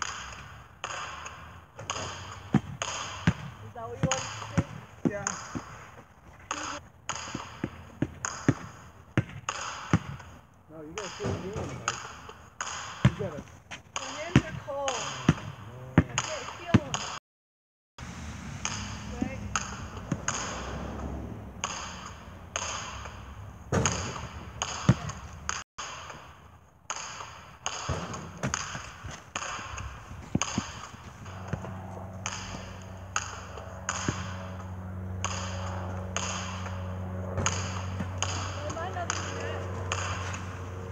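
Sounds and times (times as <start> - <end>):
steady low hum: 0.0 - 16.5, 18.0 - 40.9
basketball bouncing on pavement: 0.0 - 17.2, 18.6 - 40.9.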